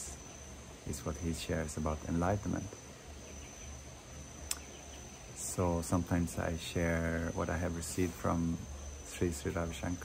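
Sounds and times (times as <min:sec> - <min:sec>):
high-pitched insect trill: 0:00.0 - 0:10.0
low background hum: 0:00.0 - 0:10.0
sharp click: 0:04.5 - 0:04.7.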